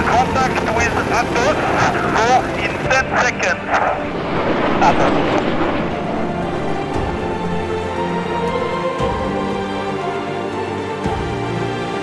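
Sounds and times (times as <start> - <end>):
steady aircraft noise: 0.0 - 12.0.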